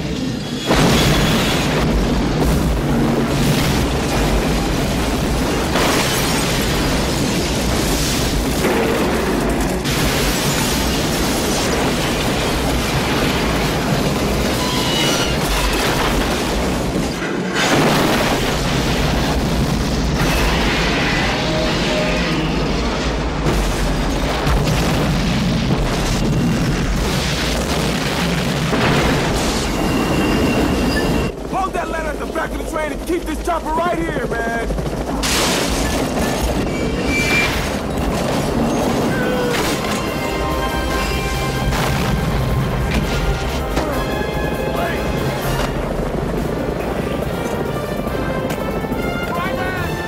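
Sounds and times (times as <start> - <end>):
roar of explosion and fire: 0.0 - 47.5
train rumbling at speed: 0.0 - 50.0.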